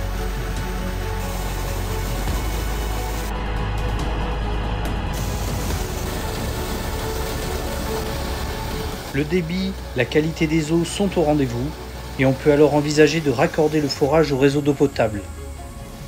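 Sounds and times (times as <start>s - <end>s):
water gushing from pipes: 0.0s - 3.3s, 5.1s - 16.0s
background music: 0.0s - 16.0s.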